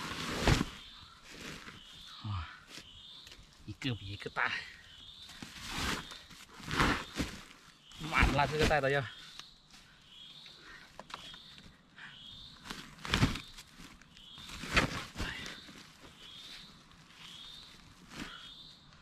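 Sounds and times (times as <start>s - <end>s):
plastic sack rustling: 12.6s - 18.3s.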